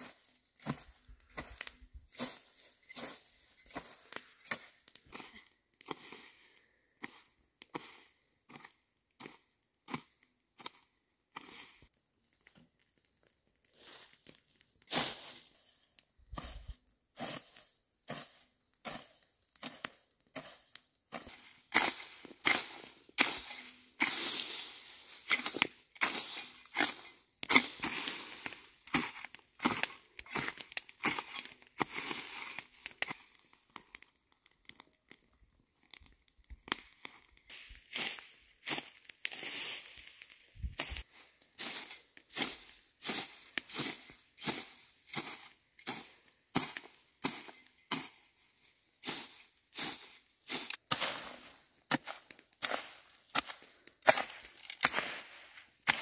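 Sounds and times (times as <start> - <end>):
hoe scraping dry ground: 0.0 - 11.9, 13.7 - 33.5, 37.3 - 56.0.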